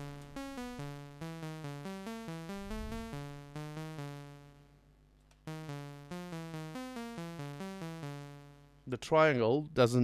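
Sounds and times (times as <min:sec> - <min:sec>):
synthesizer note sequence: 0:00.0 - 0:04.6, 0:05.5 - 0:08.8.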